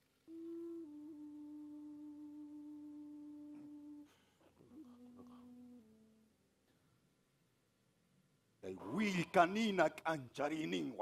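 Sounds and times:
faint voice chanting held notes: 0:00.3 - 0:06.3.

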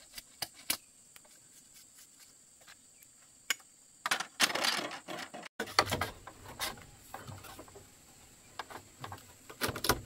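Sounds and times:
bamboo clicking and rubbing: 0:00.0 - 0:03.7.

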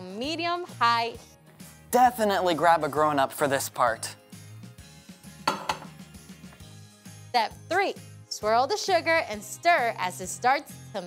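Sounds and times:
soft background music: 0:00.0 - 0:11.0
saucepan knocking on hot plate: 0:05.4 - 0:06.0.

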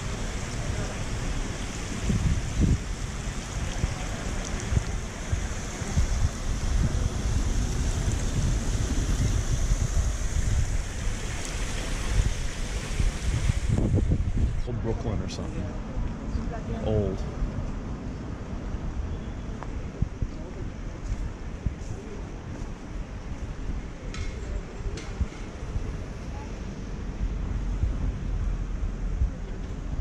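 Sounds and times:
wind buffeting microphone: 0:00.0 - 0:15.2, 0:16.4 - 0:30.0
fountain water running: 0:00.0 - 0:15.8.

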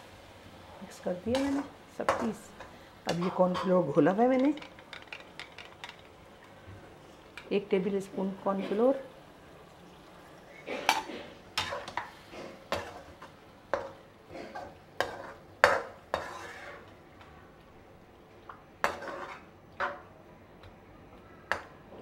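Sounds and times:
metal spatula scraping a wok: 0:01.3 - 0:02.3, 0:14.4 - 0:16.9, 0:18.8 - 0:19.5.

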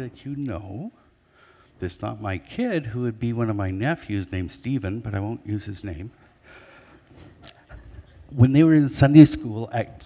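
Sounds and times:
man breathing into microphone: 0:01.2 - 0:01.8, 0:06.2 - 0:07.9.

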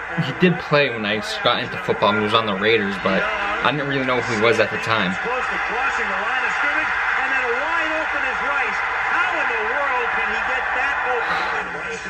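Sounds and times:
commentator talking: 0:00.0 - 0:12.0
stadium crowd noise: 0:00.0 - 0:12.0.

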